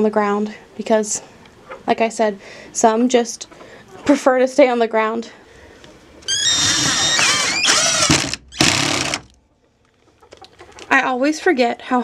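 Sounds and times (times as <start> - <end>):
electric drill boring into wood: 6.5 - 9.3.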